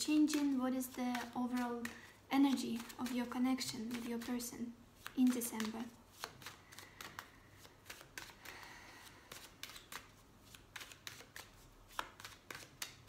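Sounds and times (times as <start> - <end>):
cards being shuffled by hand: 0.0 - 13.0
sharp card snap: 5.0 - 7.3.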